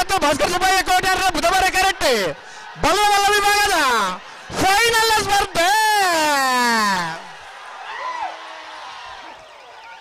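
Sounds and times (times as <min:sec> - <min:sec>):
race commentator calling: 0:00.0 - 0:07.3.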